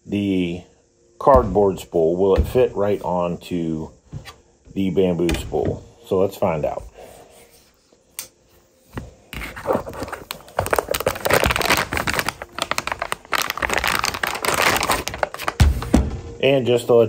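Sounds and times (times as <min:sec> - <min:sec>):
plastic film crinkling: 0:09.4 - 0:15.9.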